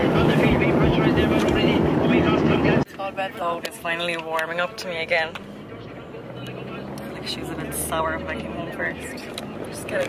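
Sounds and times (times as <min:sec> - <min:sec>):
car engine and road noise inside: 0:00.0 - 0:10.0
voices: 0:00.0 - 0:10.0.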